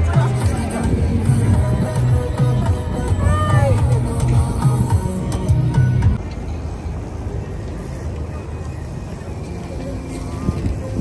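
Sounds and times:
background music: 0:00.0 - 0:06.2.

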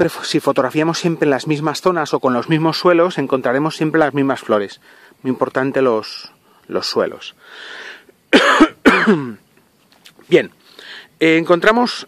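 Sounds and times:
man coughing: 0:08.3 - 0:09.4.

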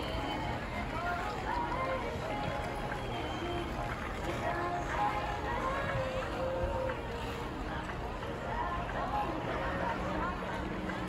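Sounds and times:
distant skaters chattering: 0:00.0 - 0:11.0
low background noise: 0:00.0 - 0:11.0.

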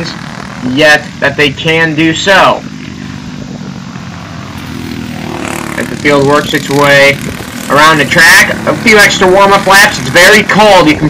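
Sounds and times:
kart engines droning: 0:00.0 - 0:11.0
utility vehicle engine: 0:00.0 - 0:11.0.

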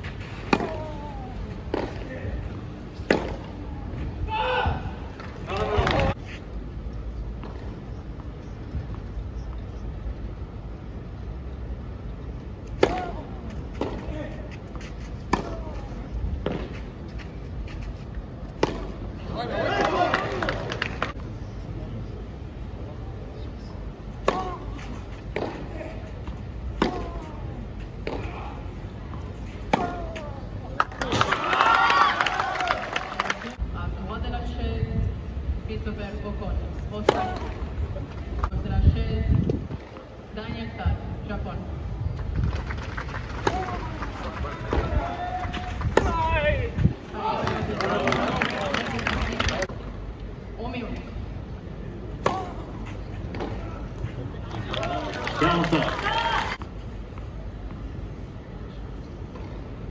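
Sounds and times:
tennis balls struck with rackets: 0:00.4 - 0:02.1, 0:03.0 - 0:03.6, 0:12.6 - 0:14.2, 0:15.2 - 0:16.8, 0:18.5 - 0:21.2, 0:24.2 - 0:28.5, 0:29.1 - 0:31.4, 0:37.0 - 0:37.7, 0:43.4 - 0:44.0, 0:44.6 - 0:46.3, 0:52.1 - 0:53.8
tennis ball struck by racket: 0:00.5 - 0:00.9, 0:03.0 - 0:03.5, 0:12.7 - 0:14.1, 0:18.6 - 0:19.0, 0:24.2 - 0:24.7, 0:25.3 - 0:25.7, 0:26.8 - 0:27.3, 0:29.6 - 0:30.3, 0:52.2 - 0:52.6.

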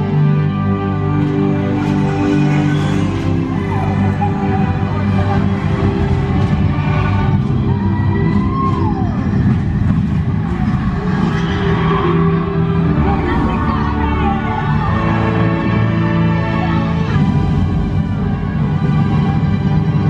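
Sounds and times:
orchestral music: 0:00.0 - 0:20.0
low rumble: 0:01.7 - 0:20.0.

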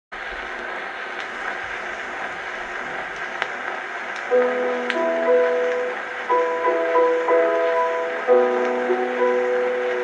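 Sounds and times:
record surface hiss: 0:00.1 - 0:10.0
faint record clicks: 0:00.3 - 0:10.0.

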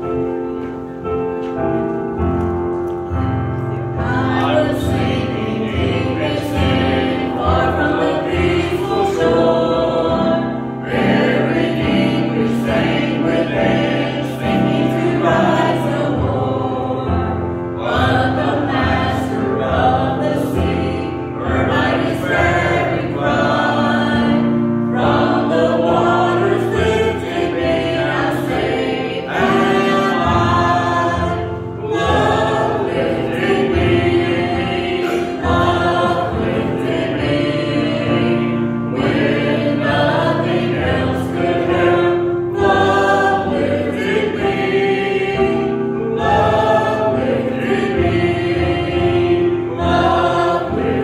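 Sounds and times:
group singing a hymn: 0:03.8 - 0:51.0.

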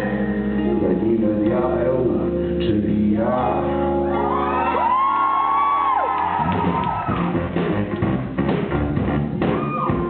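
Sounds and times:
live band playing: 0:00.0 - 0:10.0
drums groove: 0:06.2 - 0:10.0.

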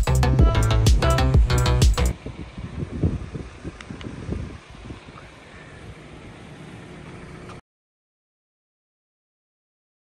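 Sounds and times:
wind buffeting microphone: 0:02.1 - 0:06.1.

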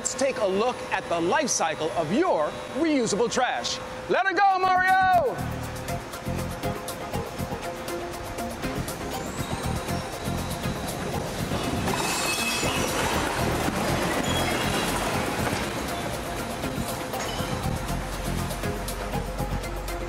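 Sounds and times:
background music: 0:04.7 - 0:20.0
garbage truck running: 0:06.0 - 0:20.0.

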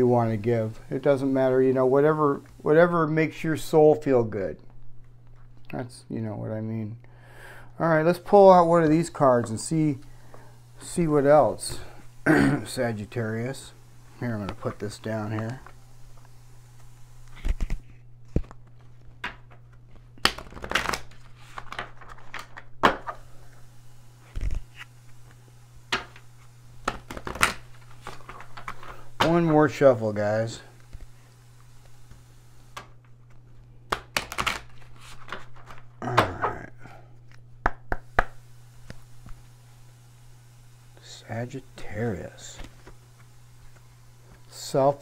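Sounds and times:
steady low hum: 0:00.0 - 0:45.0
cards riffling: 0:14.4 - 0:23.3, 0:24.2 - 0:29.5, 0:30.7 - 0:36.5
cards snapping: 0:16.8 - 0:23.2, 0:24.3 - 0:29.4, 0:31.8 - 0:36.5
cards tapping and rustling: 0:17.3 - 0:23.2, 0:25.9 - 0:29.5, 0:31.8 - 0:36.5
card snaps: 0:20.2 - 0:23.2, 0:33.9 - 0:36.4, 0:37.3 - 0:39.4.

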